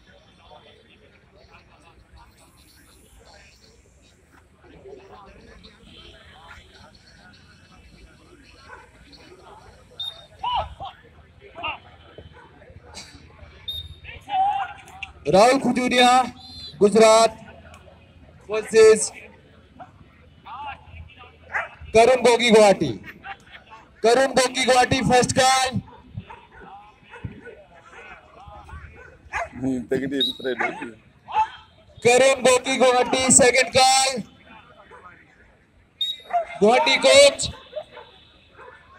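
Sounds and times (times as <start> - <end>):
distant voices: 0.0 - 38.9
dogs barking: 8.6 - 9.2, 12.2 - 12.7, 21.5 - 21.9, 25.8 - 28.2, 28.8 - 29.6, 30.3 - 31.6, 36.1 - 38.9.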